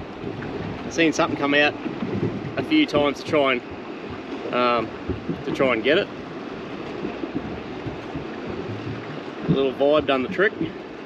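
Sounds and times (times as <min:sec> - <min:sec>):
water noise around boat: 0:00.0 - 0:11.0
wind: 0:00.0 - 0:11.0.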